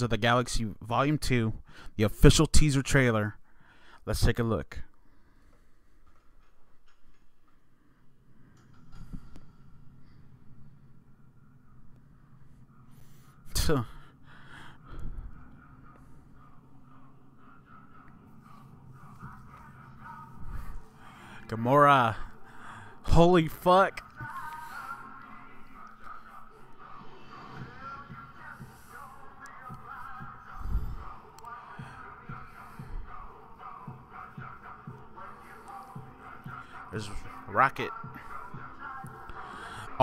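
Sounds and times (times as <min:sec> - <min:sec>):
trailer music with low beat: 0:25.5 - 0:39.9.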